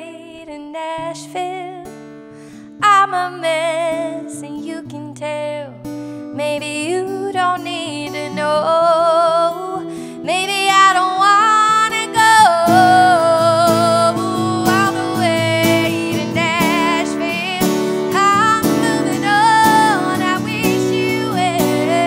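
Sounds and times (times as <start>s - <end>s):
woman singing with vibrato: 0.0s - 1.9s, 2.8s - 5.8s, 6.4s - 22.0s
strummed acoustic guitar: 1.0s - 22.0s.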